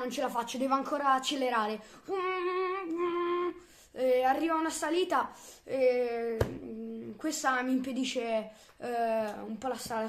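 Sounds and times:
boy imitating car engine: 1.4s - 7.7s.

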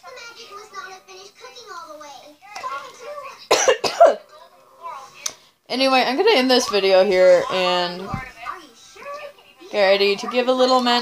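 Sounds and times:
woman coughing: 3.5s - 4.2s.

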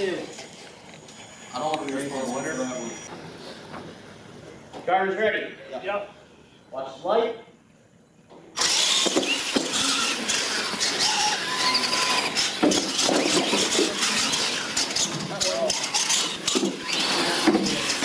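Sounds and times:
toy truck motor whine: 8.6s - 18.0s
toy trucks knocking on floor: 8.9s - 9.8s, 12.4s - 14.0s.

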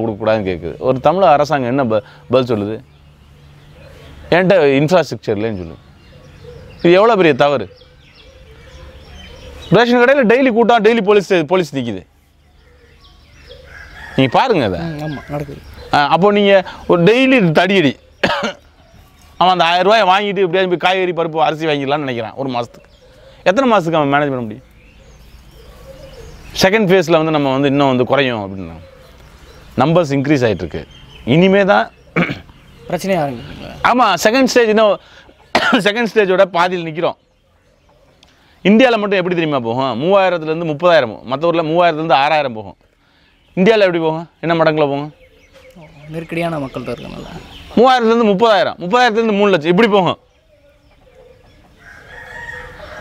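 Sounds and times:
faint bird calls: 0.0s - 53.0s
rooster crowing: 13.5s - 15.8s, 51.0s - 53.0s.

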